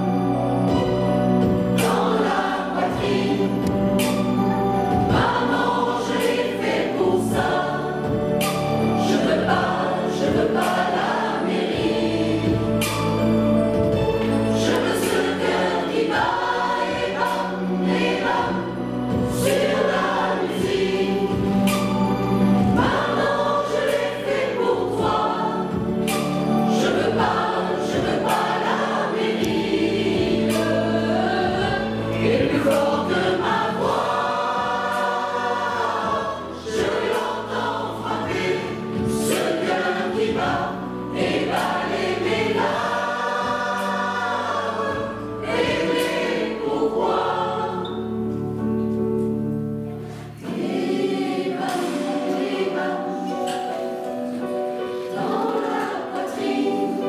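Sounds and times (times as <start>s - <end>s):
mixed choir singing a pop song: 0.0s - 57.0s.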